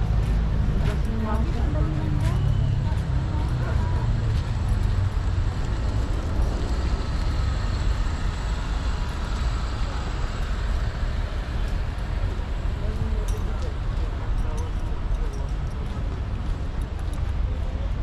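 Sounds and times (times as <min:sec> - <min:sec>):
faint voices: 0:00.0 - 0:18.0
low outdoor rumble: 0:00.0 - 0:18.0.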